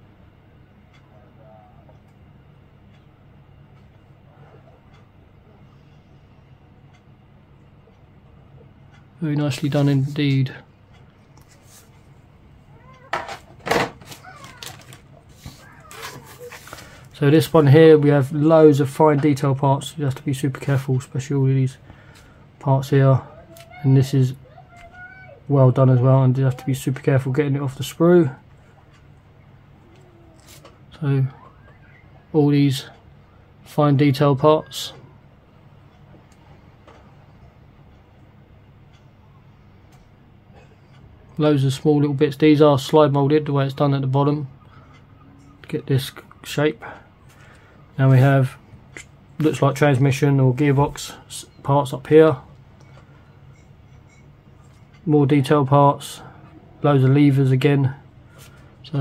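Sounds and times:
steady low hum: 0.0s - 59.0s
faint wavering calls: 1.0s - 2.0s, 28.6s - 33.6s, 44.5s - 48.0s.

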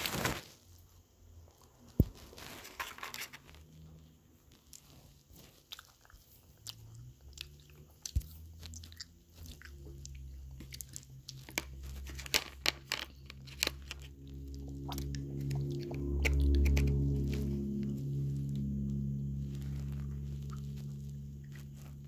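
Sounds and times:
low steady hum: 0.8s - 22.0s
person chewing crunchy candy: 4.5s - 22.0s.

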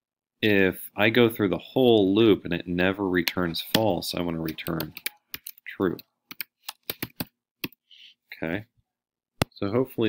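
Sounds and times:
computer keyboard typing: 3.6s - 7.8s.

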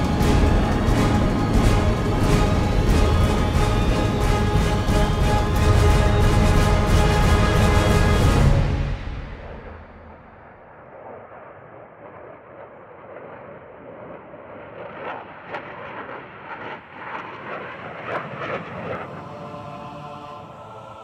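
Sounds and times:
jet engine rushing: 0.0s - 21.0s.

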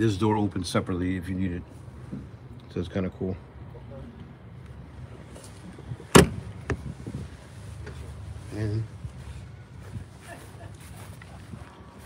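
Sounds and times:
compartment door clunk: 6.1s - 6.4s.

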